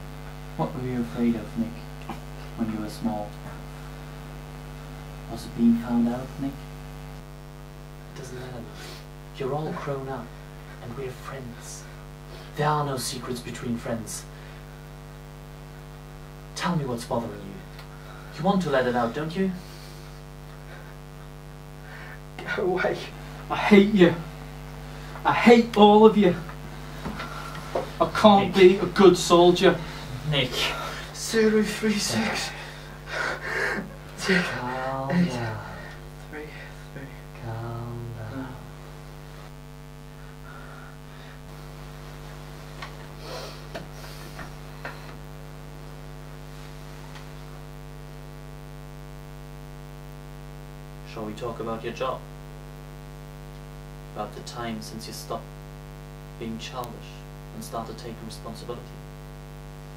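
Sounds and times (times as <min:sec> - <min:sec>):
electrical mains hum: 0:00.0 - 0:59.9.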